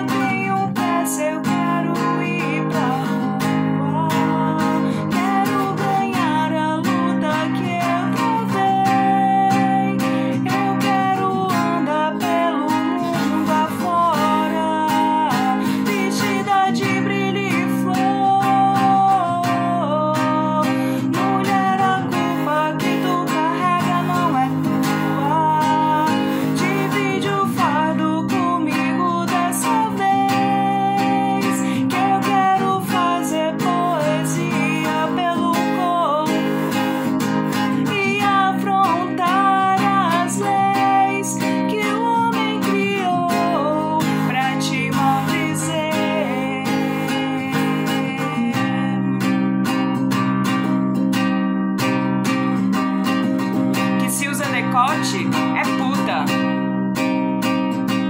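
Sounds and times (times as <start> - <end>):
strummed acoustic guitar: 0.0 - 58.0
woman singing: 0.0 - 58.0.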